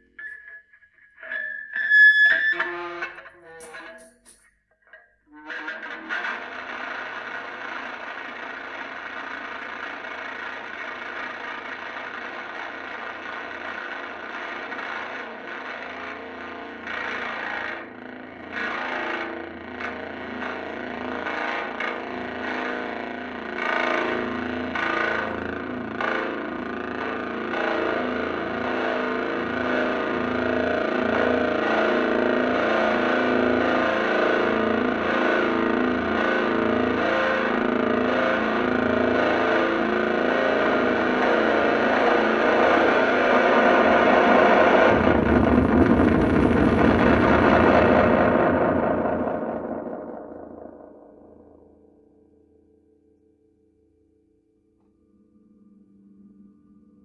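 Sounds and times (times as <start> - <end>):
distorted electric guitar drone: 0.0 - 4.4, 5.3 - 52.2.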